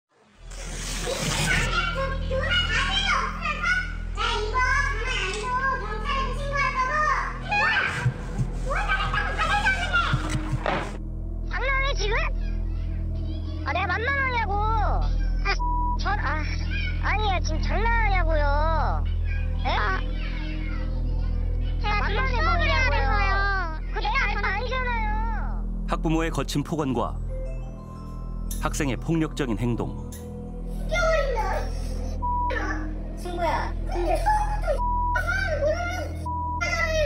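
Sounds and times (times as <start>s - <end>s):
low background music: 0.4s - 37.0s.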